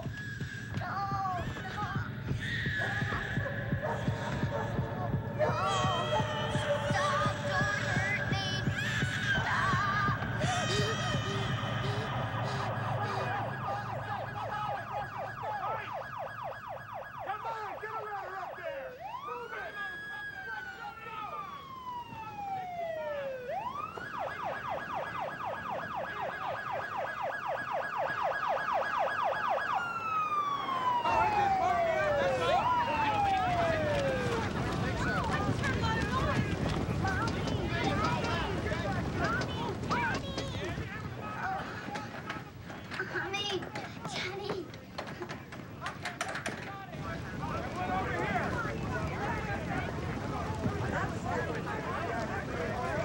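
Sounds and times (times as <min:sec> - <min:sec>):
emergency vehicle siren: 0:00.0 - 0:53.0.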